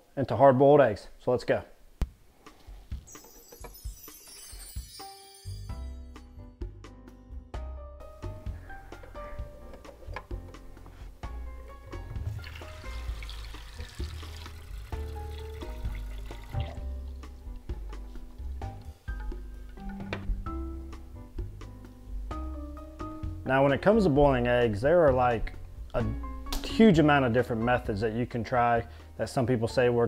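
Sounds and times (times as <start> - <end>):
background music: 1.9 - 30.0
tap water running into pot: 12.0 - 17.0.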